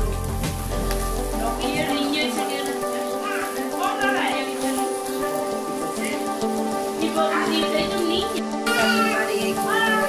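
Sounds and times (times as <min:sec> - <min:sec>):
background music with held notes: 0:00.0 - 0:10.0
meat sizzling on a grill: 0:00.0 - 0:10.0.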